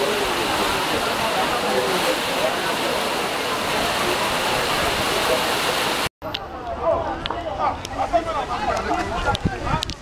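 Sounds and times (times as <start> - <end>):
rain on a metal roof: 0.0 - 6.1
faint voices: 0.0 - 10.0.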